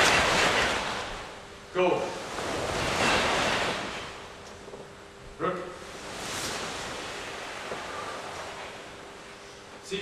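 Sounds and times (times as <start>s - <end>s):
uniforms swishing: 5.9s - 9.5s
feet shifting on mats: 6.0s - 9.8s.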